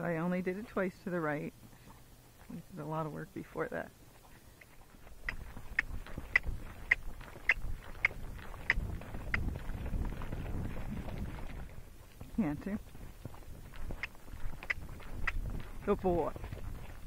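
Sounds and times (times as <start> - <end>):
horse hooves clicking on sand: 0.0 - 17.0
low rumble of movement: 3.9 - 17.0.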